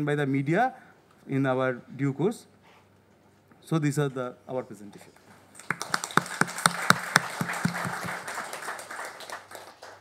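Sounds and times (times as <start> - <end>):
audience clapping: 5.6 - 10.0.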